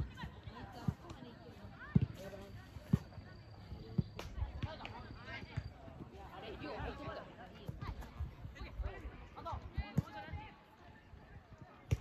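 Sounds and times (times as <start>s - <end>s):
soccer ball kick thumps: 0.2s - 3.2s, 3.8s - 5.8s, 7.6s - 8.3s, 9.7s - 10.5s.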